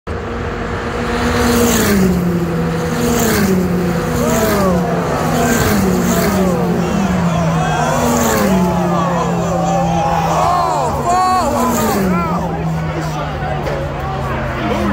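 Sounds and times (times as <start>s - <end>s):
racing car engines passing: 0.1s - 14.9s.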